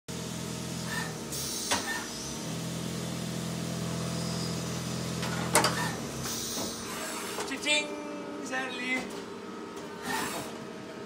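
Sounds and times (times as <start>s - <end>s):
low hum of machinery: 0.1s - 11.0s.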